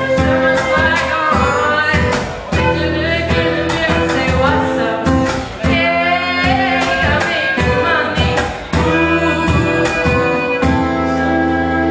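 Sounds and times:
drum kit beat: 0:00.0 - 0:11.1
person singing: 0:00.0 - 0:11.9
strummed acoustic guitar: 0:00.0 - 0:11.9
violin: 0:00.0 - 0:11.9.

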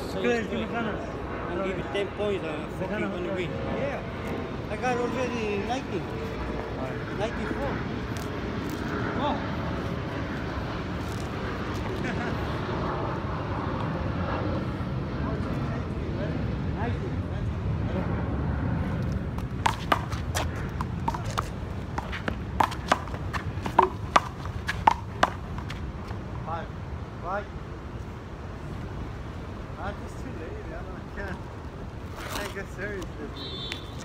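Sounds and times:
low city background hum: 0:00.0 - 0:34.0.

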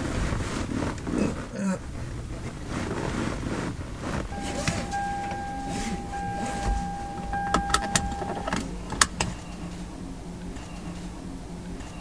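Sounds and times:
low hum: 0:01.8 - 0:12.0
steady high tone: 0:04.3 - 0:11.9
seat belt buckle clicks: 0:06.6 - 0:09.4.

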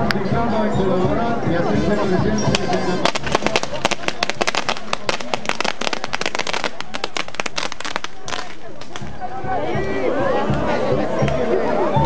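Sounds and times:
firecracker bangs: 0:02.6 - 0:09.2.

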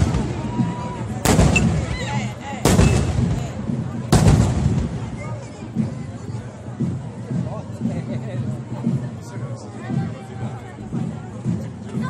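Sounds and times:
fireworks banging with echo: 0:00.0 - 0:05.3
murmur of crowd: 0:00.0 - 0:12.0.

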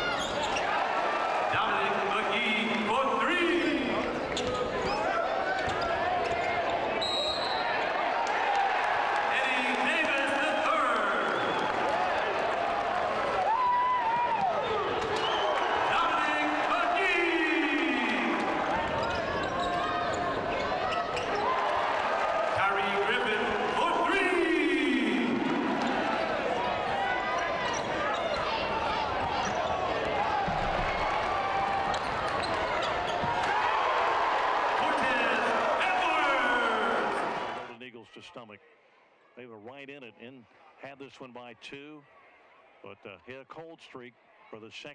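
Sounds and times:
arena noise with voices: 0:00.0 - 0:44.9.

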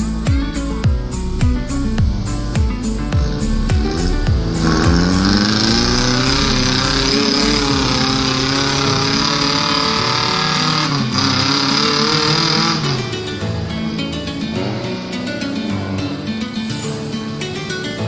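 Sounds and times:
engine revving hard: 0:01.1 - 0:16.3
vehicle churning through mud and water: 0:02.2 - 0:13.8.

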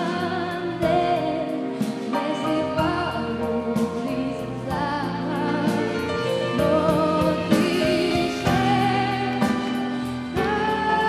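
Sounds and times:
instrumental backing music: 0:00.0 - 0:11.0
woman singing: 0:00.0 - 0:11.0.

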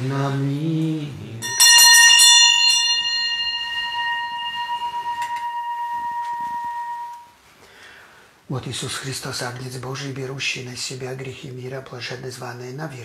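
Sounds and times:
small bell ringing: 0:01.4 - 0:07.3.

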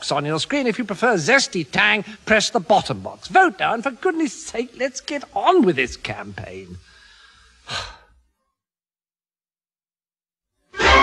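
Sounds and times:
man sighing: 0:07.6 - 0:08.2.

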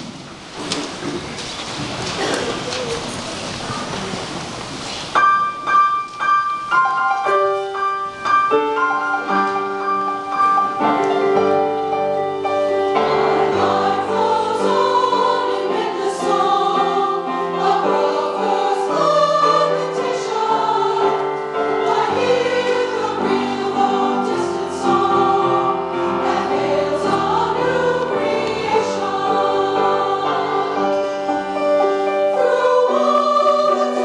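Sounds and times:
piano: 0:00.0 - 0:34.0
women's choir singing a hymn: 0:08.8 - 0:34.0.

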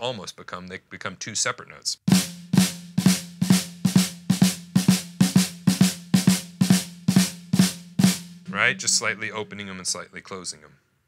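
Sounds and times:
snare drum flams: 0:02.1 - 0:09.0.

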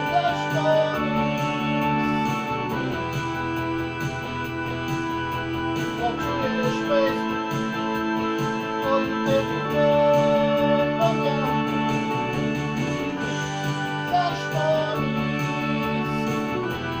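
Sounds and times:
electronic keyboard playing song: 0:00.0 - 0:17.0.

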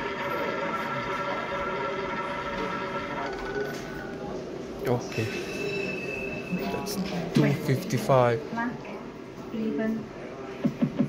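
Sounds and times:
electronic wheel-spin whir: 0:00.0 - 0:04.2.

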